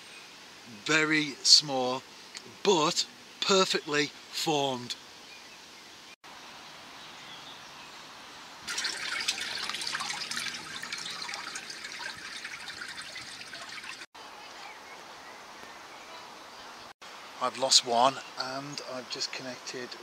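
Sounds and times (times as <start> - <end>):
water trickling and bubbling: 8.6 - 14.1.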